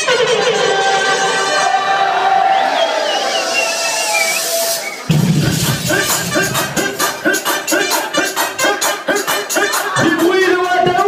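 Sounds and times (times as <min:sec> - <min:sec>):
club dance music: 0:00.0 - 0:11.0.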